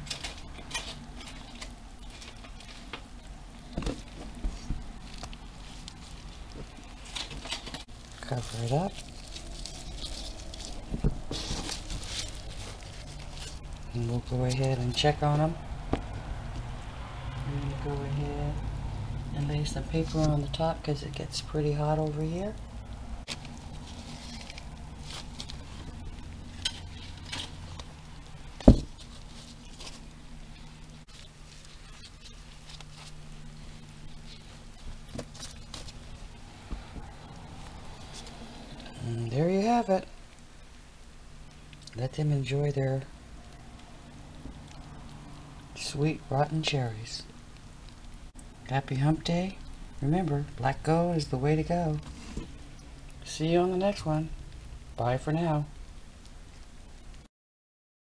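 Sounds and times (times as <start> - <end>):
gloved hand rustling leaves: 0.0 - 39.9
faint low hum: 0.0 - 57.3.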